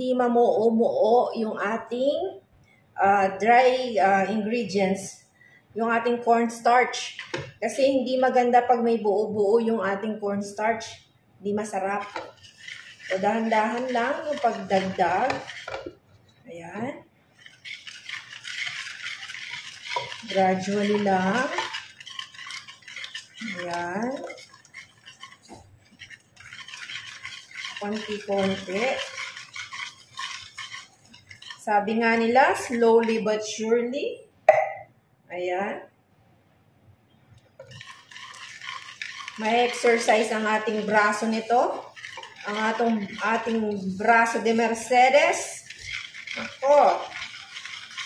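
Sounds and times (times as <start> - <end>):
whisk scraping in a pot: 5.8 - 33.6, 37.4 - 48.0.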